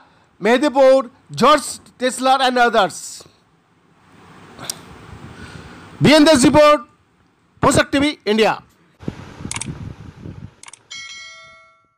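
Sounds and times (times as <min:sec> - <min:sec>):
bell ding: 0:10.9 - 0:11.9.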